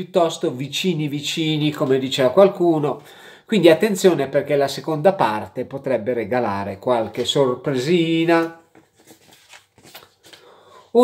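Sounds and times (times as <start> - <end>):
man speaking: 0.0 - 8.7.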